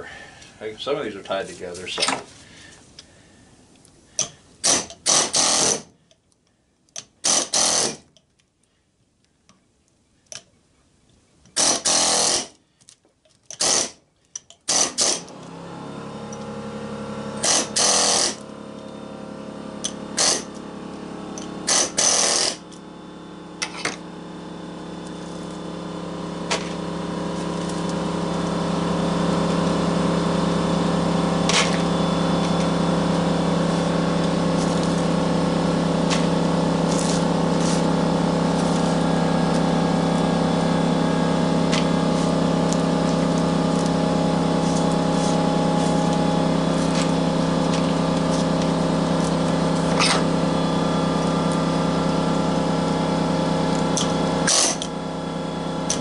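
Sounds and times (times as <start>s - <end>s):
air chisel bursts: 4.2s - 5.9s, 13.5s - 14.0s, 20.2s - 20.5s, 54.0s - 54.9s
steady machine hum: 15.3s - 56.0s.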